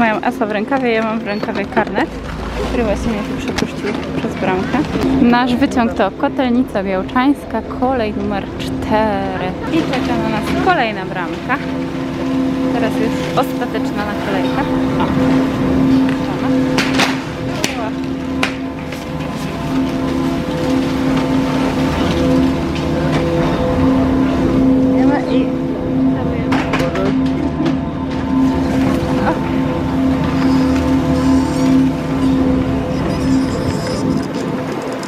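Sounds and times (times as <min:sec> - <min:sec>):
machinery humming: 0:00.0 - 0:35.0.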